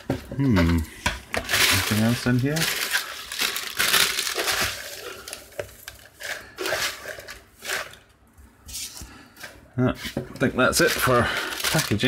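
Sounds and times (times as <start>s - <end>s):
paper rustling and crinkling: 1.3s - 8.0s, 10.0s - 12.0s.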